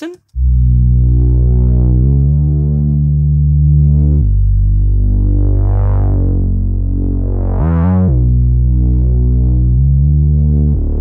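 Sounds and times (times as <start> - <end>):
synth drone bass: 0.3 - 11.0.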